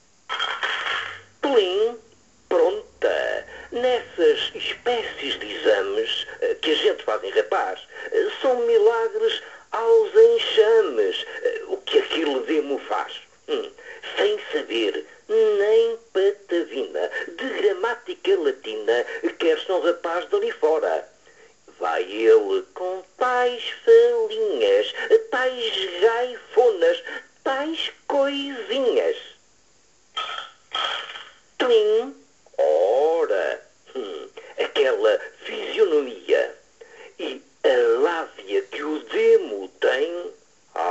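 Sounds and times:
person talking on radio: 0.3 - 21.0, 21.7 - 29.3
person reciting a poem: 0.3 - 29.4, 31.0 - 40.9.

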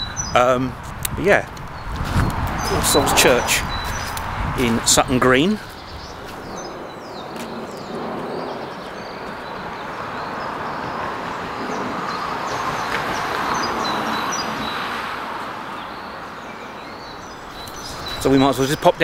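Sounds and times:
birds chirping faintly: 0.0 - 19.0
vehicle passing: 1.7 - 18.8.

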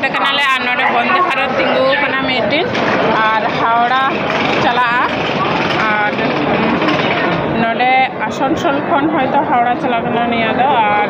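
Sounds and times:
railway station background din: 0.0 - 11.0.

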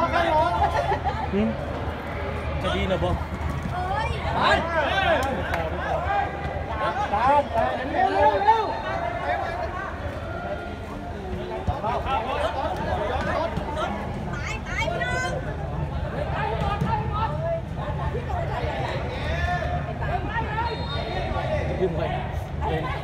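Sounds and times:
crowd chattering and shouting: 0.0 - 23.0.

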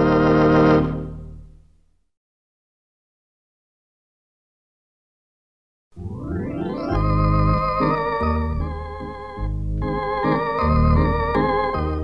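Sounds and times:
organ chord with vibrato: 0.0 - 1.4, 6.0 - 12.0.

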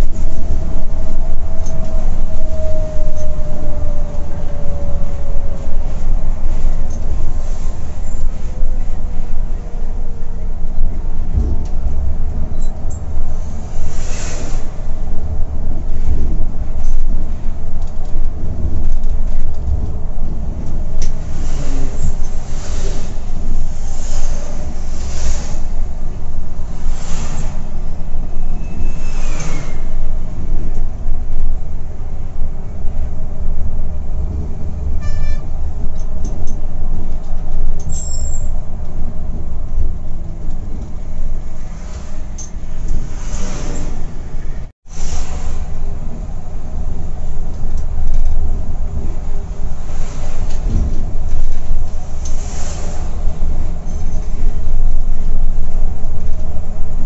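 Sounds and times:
diesel engine rumble: 0.0 - 57.0
wind and tyre noise: 0.0 - 57.0.

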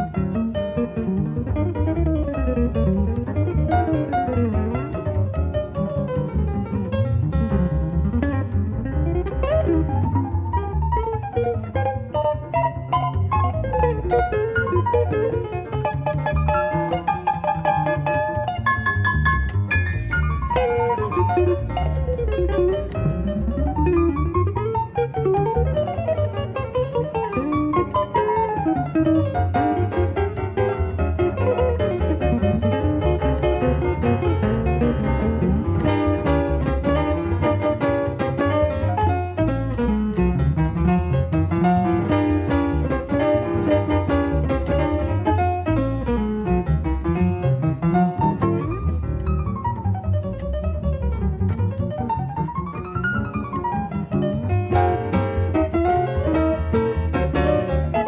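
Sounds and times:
jazz trio playing swing: 0.0 - 58.0.

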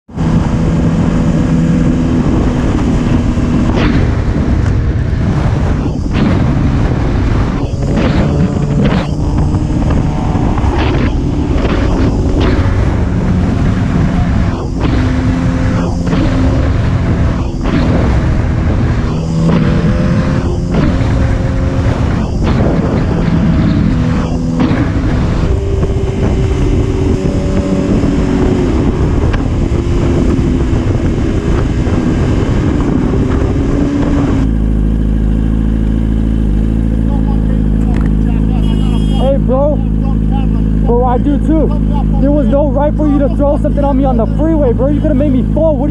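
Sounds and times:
motorcycle engine riding fast: 0.0 - 45.9
wind rush on microphone: 0.1 - 37.0.

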